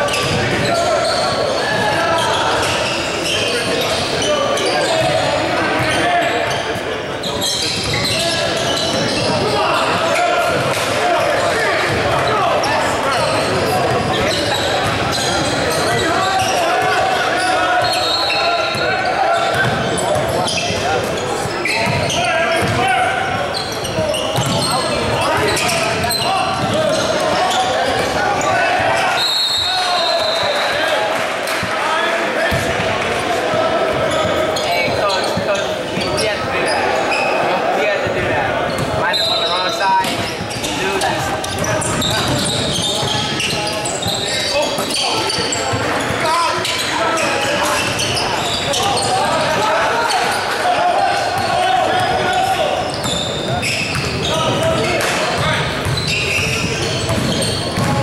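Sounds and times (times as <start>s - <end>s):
sneaker squeaks: 0.0s - 31.0s, 32.4s - 58.0s
shouting and chatter: 0.0s - 58.0s
basketball bouncing on floor: 24.4s - 24.6s, 55.8s - 56.1s, 57.1s - 58.0s.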